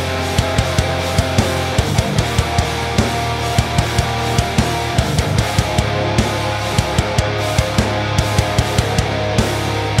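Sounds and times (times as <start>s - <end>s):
distorted electric guitar riff: 0.0s - 10.0s.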